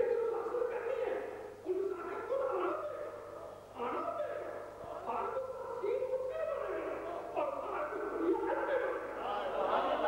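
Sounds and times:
man speaking through microphones: 0:00.0 - 0:09.2.

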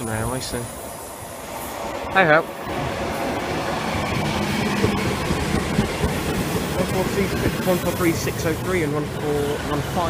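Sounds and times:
diesel train engine running: 0:00.0 - 0:10.0
train wheels clicking over rail joints: 0:03.6 - 0:10.0.

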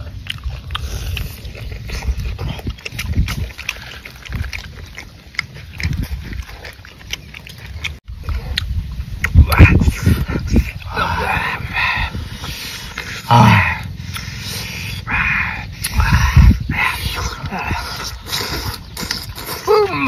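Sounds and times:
man grunting: 0:13.2 - 0:13.9, 0:19.7 - 0:20.0
sharp breathy puffs: 0:13.9 - 0:19.7
men exclaiming: 0:19.7 - 0:20.0.

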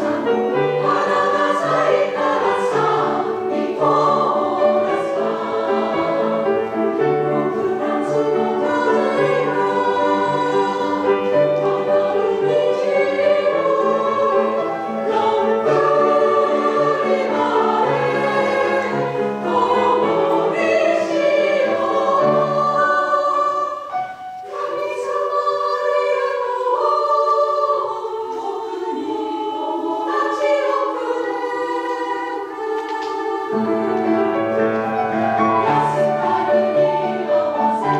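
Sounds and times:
piano accompaniment: 0:00.0 - 0:27.7, 0:30.2 - 0:37.9
women's choir singing: 0:00.0 - 0:37.9.

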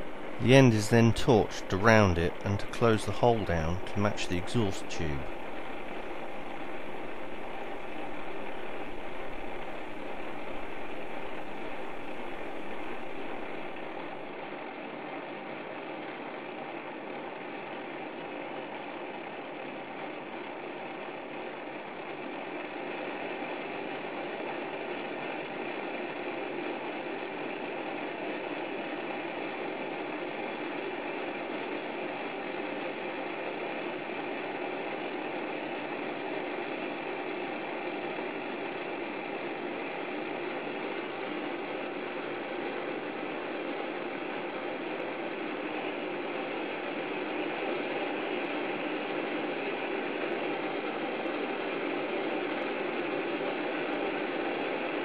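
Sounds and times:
gas torch flame hissing: 0:00.0 - 0:14.3
lathe turning: 0:00.0 - 0:14.3.

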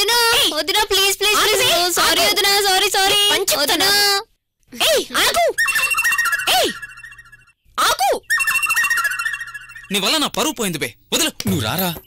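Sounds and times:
wavering electronic tone: 0:08.3 - 0:10.2.

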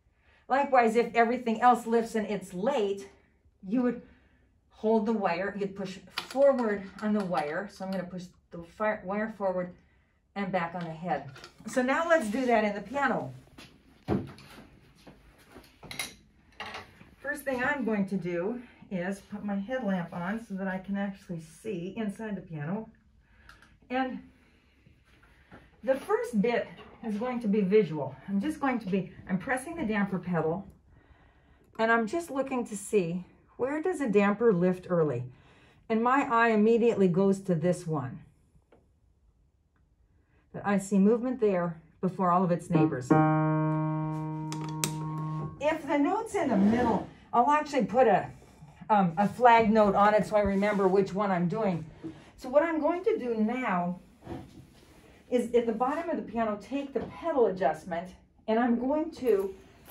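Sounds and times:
piano note ringing: 0:42.7 - 0:45.9.

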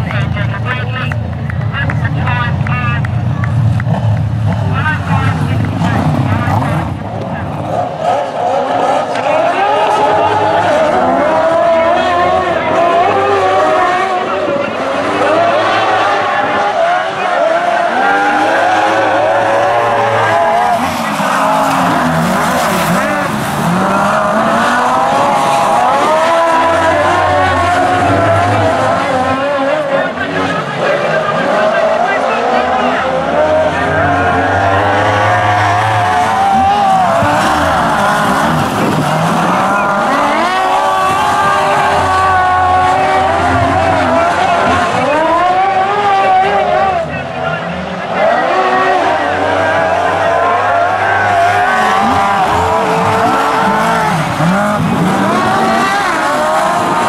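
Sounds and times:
sidecar motorcycle engines revving: 0:00.0 - 0:57.0.

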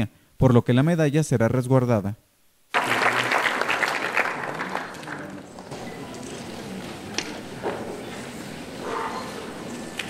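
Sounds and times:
audience applauding: 0:02.7 - 0:06.7.

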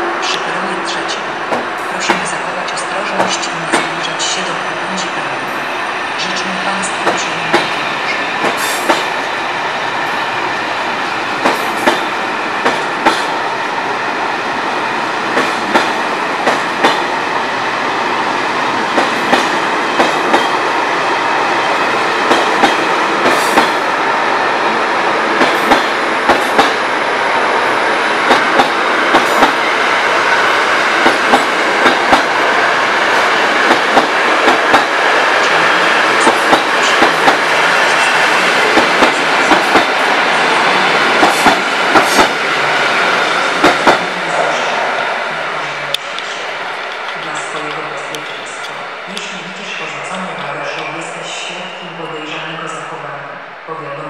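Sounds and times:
train rumble: 0:00.0 - 0:54.0
train wheels clicking over rail joints: 0:06.3 - 0:09.2, 0:11.4 - 0:13.4, 0:15.3 - 0:17.1, 0:18.9 - 0:20.6, 0:22.2 - 0:23.8, 0:25.4 - 0:26.8, 0:28.2 - 0:29.6, 0:30.9 - 0:32.4, 0:33.5 - 0:40.1, 0:41.1 - 0:42.4, 0:43.2 - 0:44.6.

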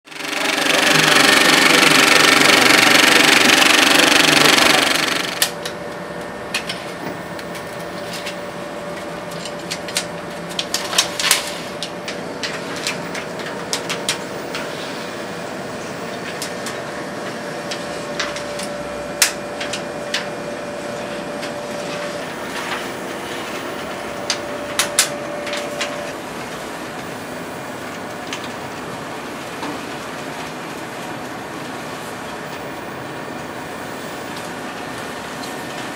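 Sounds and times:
projector machinery running: 0:00.1 - 0:35.9.

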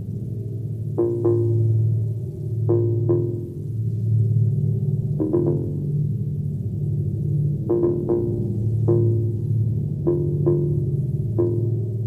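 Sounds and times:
sustained low synth bass: 0:00.0 - 0:12.0.

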